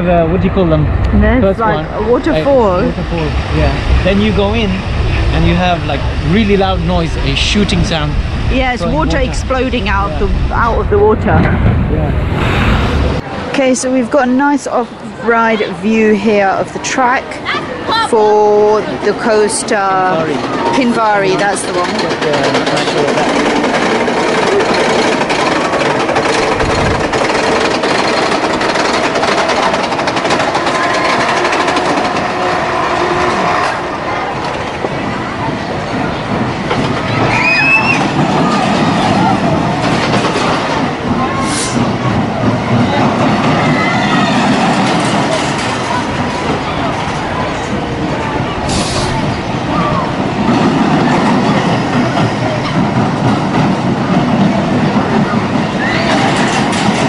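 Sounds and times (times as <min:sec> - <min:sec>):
roller coaster rattling on track: 0:00.0 - 0:57.0
riders and crowd voices: 0:13.2 - 0:57.0.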